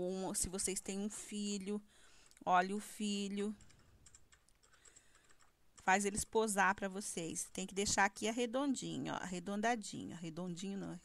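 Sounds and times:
woman speaking: 0.0 - 3.6, 5.8 - 11.0.

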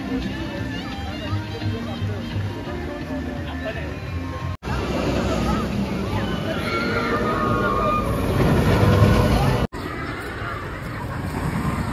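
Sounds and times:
roller coaster rumbling on track: 0.0 - 11.9
outdoor ambience: 4.1 - 11.9.

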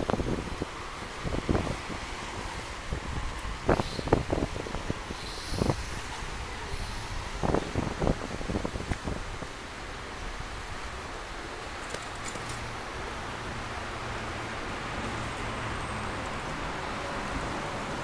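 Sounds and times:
distant traffic rumble: 0.0 - 18.0.

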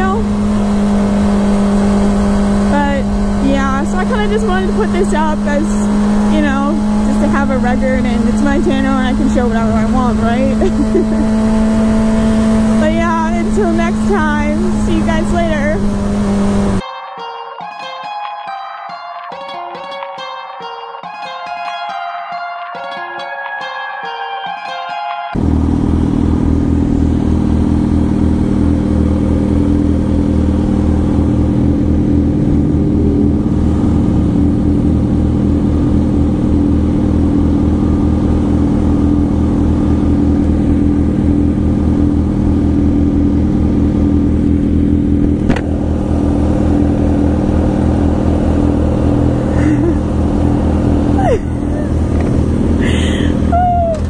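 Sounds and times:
motorcycle engines idling: 0.0 - 16.8, 25.4 - 54.0
person laughing: 8.4 - 11.4, 49.4 - 50.2, 51.1 - 54.0
guitar music cue: 16.8 - 25.6.

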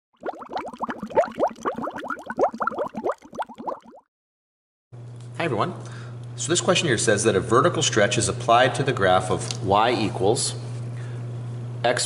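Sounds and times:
water bubbling plops: 0.1 - 4.1.

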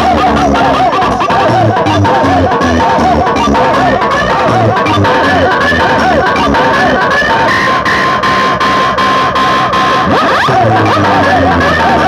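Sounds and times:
loud dance music over speakers: 0.0 - 12.0
siren-like electronic effects: 0.0 - 12.0.

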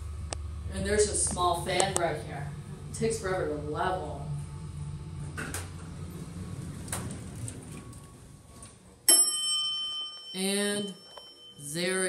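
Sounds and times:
elevator low rumble: 0.0 - 9.1
elevator arrival chime: 3.0 - 12.0.

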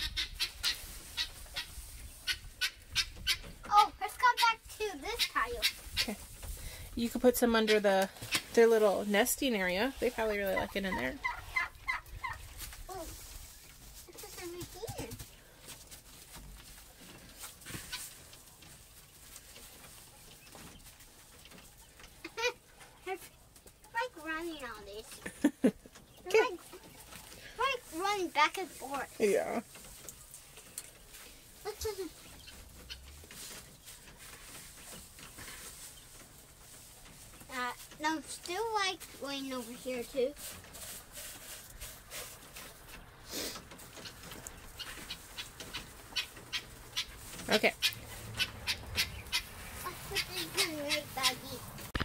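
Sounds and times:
quail chirping: 0.0 - 3.5, 5.1 - 6.6, 9.9 - 12.6, 29.8 - 37.6, 42.7 - 51.6
wood shavings rustling: 0.4 - 25.3, 25.9 - 52.0
quail calling softly: 43.9 - 51.4.

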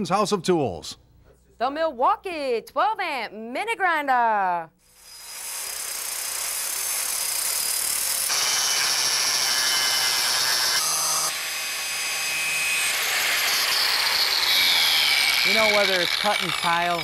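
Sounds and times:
angle grinder grinding metal: 4.9 - 17.0.

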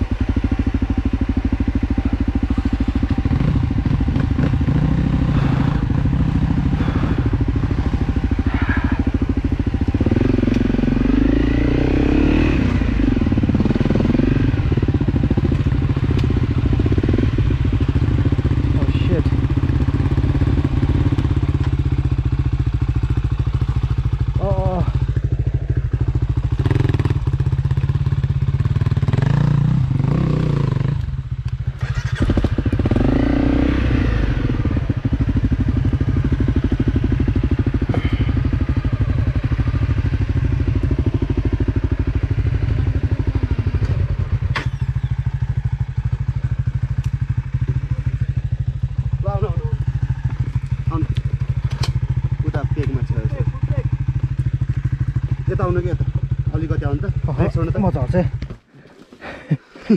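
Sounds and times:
dirt bike engine at low revs: 0.0 - 59.9.

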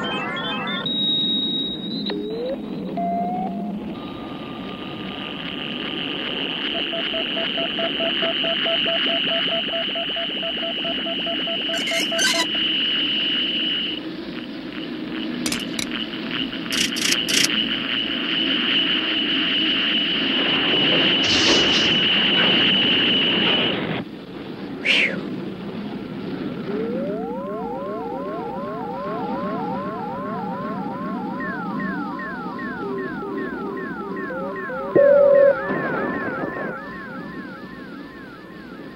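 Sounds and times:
high pulsing electronic tone: 11.6 - 12.6, 15.5 - 15.9, 16.7 - 17.5, 26.1 - 38.9
low hum: 24.0 - 38.9.

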